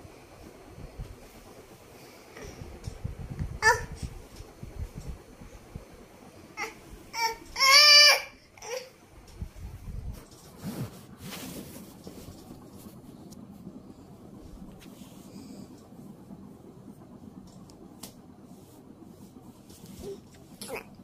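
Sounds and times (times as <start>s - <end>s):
low room noise: 0.0s - 21.0s.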